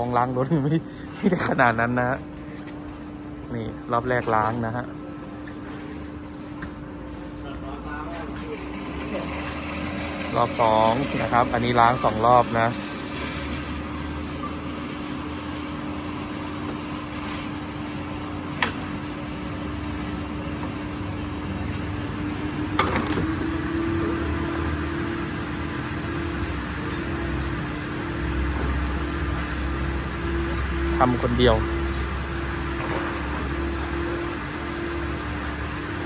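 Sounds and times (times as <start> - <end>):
steady mechanical hum: 0.0 - 36.0.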